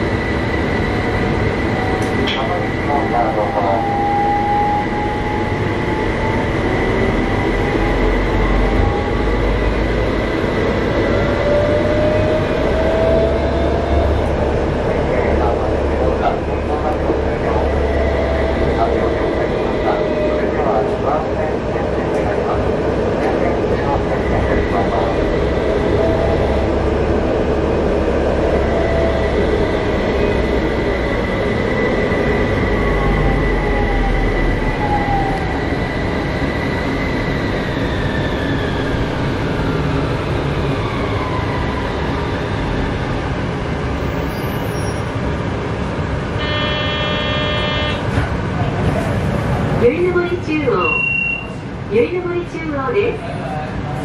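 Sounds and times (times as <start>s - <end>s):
tram interior running noise: 0.0s - 54.0s
electronic buzzer tone: 46.4s - 48.0s.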